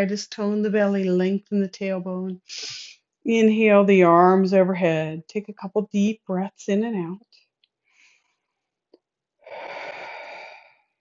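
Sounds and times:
person breathing deeply: 9.4s - 11.0s.

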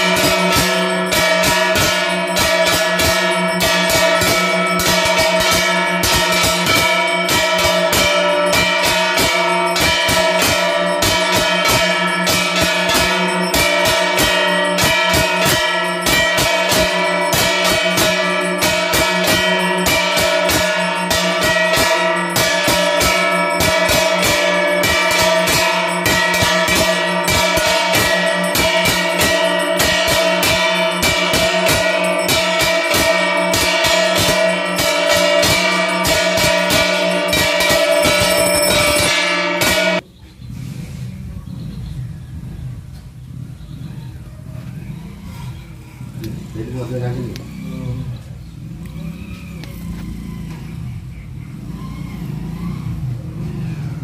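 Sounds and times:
temple bells ringing: 0.0s - 40.1s, 44.8s - 54.0s.

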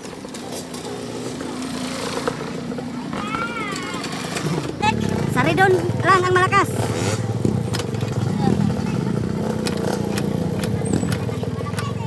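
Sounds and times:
dirt bike engine at low revs: 4.1s - 11.6s.

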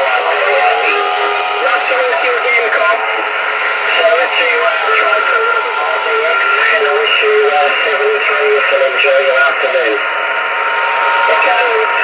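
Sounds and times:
thin radio speech: 0.0s - 10.0s
radio hiss: 0.0s - 10.6s, 11.3s - 12.0s.

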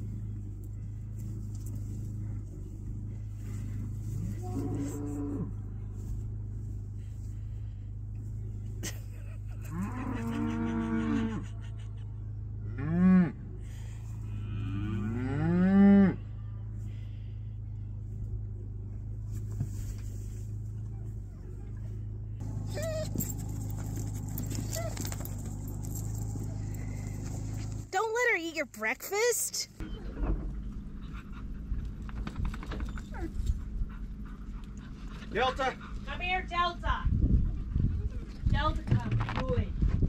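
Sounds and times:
steady low hum: 0.0s - 28.0s
cattle mooing: 4.2s - 5.8s, 9.6s - 11.5s, 14.2s - 16.2s.

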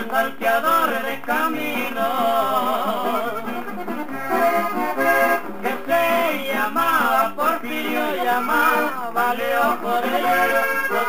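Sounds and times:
accordion melody: 0.0s - 11.0s.

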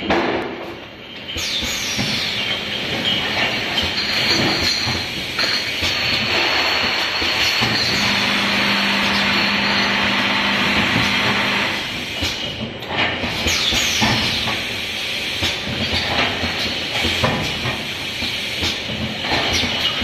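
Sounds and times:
glass bottles on conveyor: 0.8s - 20.0s
bottle filling machine hissing: 1.2s - 12.6s, 13.3s - 20.0s.

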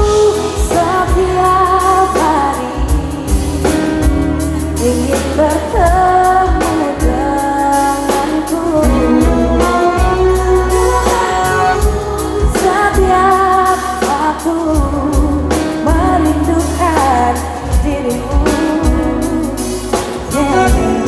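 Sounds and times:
drum kit: 0.0s - 21.0s
electric bass: 0.0s - 21.0s
woman singing: 0.0s - 21.0s.

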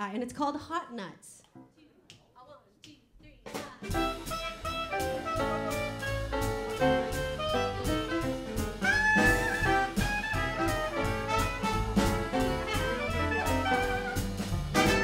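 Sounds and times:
jazz band playing: 3.8s - 15.0s
trumpet: 3.8s - 15.0s
clarinet: 3.9s - 15.0s.

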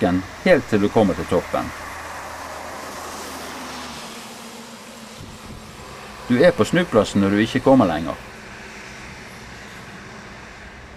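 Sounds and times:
bus engine passing: 0.0s - 10.9s
tyres hissing on wet road: 0.0s - 10.9s.

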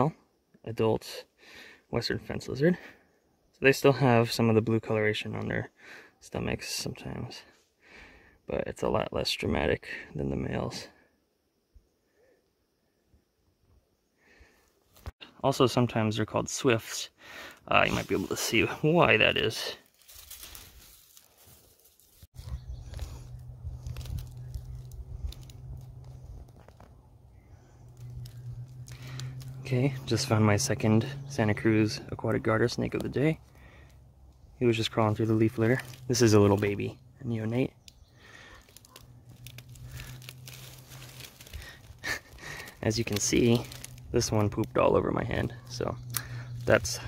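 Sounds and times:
small crackles: 17.4s - 30.4s, 32.5s - 47.0s
grass and leaves rustling: 17.4s - 47.0s
low rumble: 22.4s - 32.2s.

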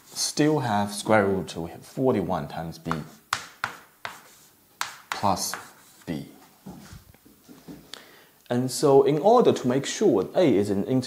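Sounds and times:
chalk clicking on a blackboard: 2.9s - 6.0s.

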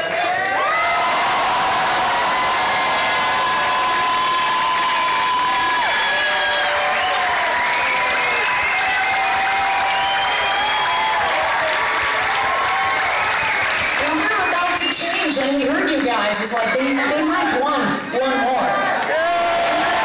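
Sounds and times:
crowd cheering and applauding: 0.0s - 17.0s, 18.7s - 20.0s.

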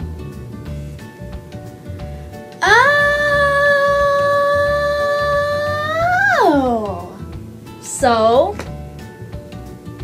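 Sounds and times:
girl singing a high note: 2.6s - 7.2s.

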